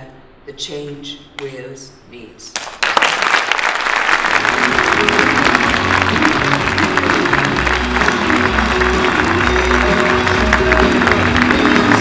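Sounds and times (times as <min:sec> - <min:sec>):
audience applauding: 0:02.6 - 0:12.0
recorded music with bass: 0:04.4 - 0:12.0.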